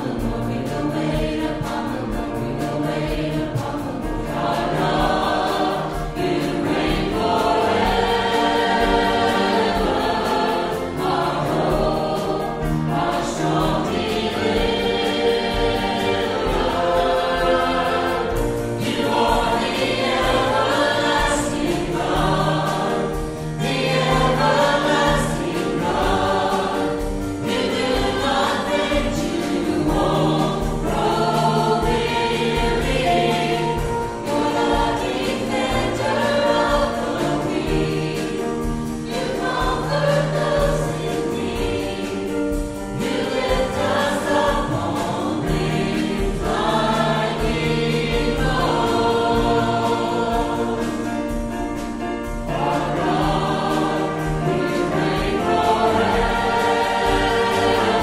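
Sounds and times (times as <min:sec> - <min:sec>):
accompanying music: 0:00.0 - 0:58.0
group singing a hymn: 0:00.0 - 0:58.0.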